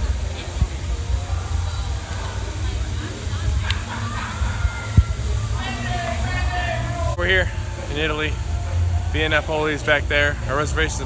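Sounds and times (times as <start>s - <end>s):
faint crowd voices: 0.0s - 11.0s
steady low rumble: 0.0s - 11.0s
man speaking close to microphone: 9.1s - 11.0s.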